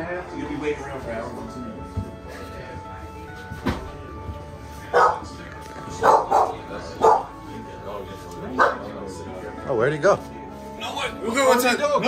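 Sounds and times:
dog barking: 4.9 - 5.3, 5.9 - 7.4, 8.6 - 8.9.

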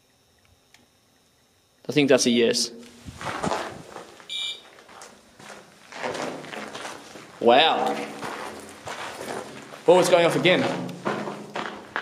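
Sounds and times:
footsteps: 2.8 - 12.0
rustling: 2.9 - 7.4
short electronic beep: 4.3 - 4.7.

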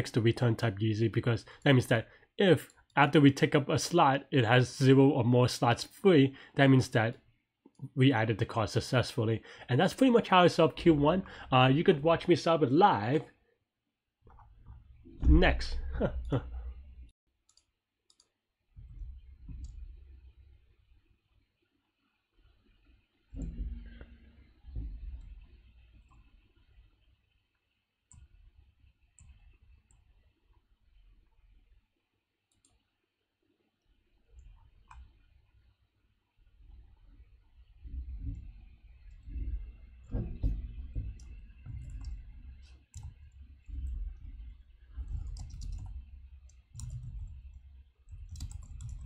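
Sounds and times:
faint mouse clicks: 17.5 - 19.9, 29.2 - 30.2, 32.5 - 33.0, 34.4 - 35.3, 41.0 - 44.2
computer keyboard keys clicking: 41.2 - 42.2, 42.9 - 43.9, 45.0 - 49.0.

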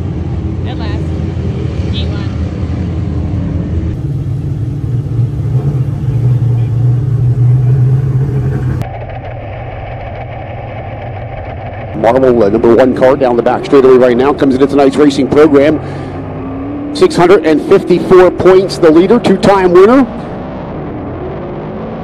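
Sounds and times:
race car engines running: 0.0 - 22.0.

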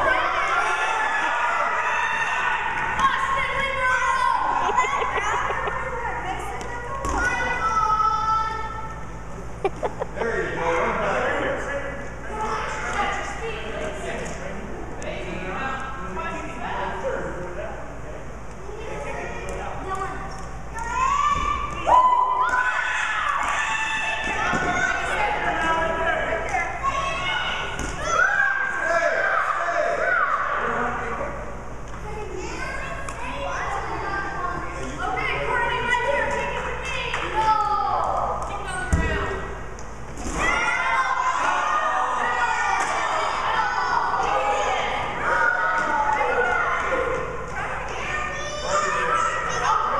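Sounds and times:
voices shouting in a gymnasium: 0.0 - 49.9.

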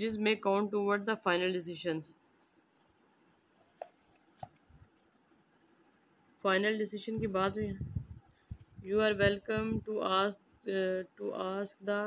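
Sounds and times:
pen on paper: 2.3 - 5.4
handling paper pages: 2.4 - 5.4.

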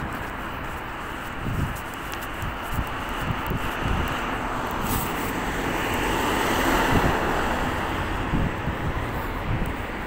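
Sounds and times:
road traffic passing: 0.0 - 10.0
wind buffeting microphone: 0.0 - 10.0.

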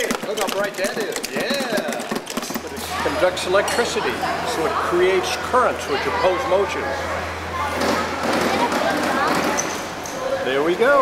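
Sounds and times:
adults and children chattering: 0.0 - 11.0.

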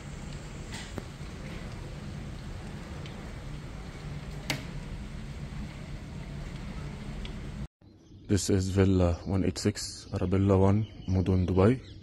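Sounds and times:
heavy rain pouring: 0.0 - 7.7.

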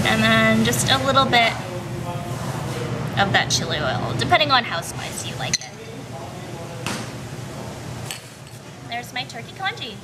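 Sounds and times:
commercial kitchen hum: 0.0 - 10.0.

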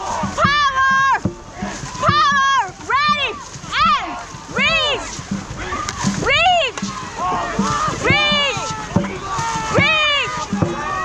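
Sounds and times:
paddles splashing water: 0.0 - 11.0.

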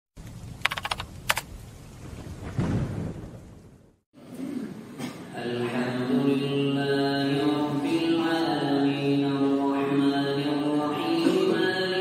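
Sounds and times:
rapid clicks: 0.6 - 1.5.

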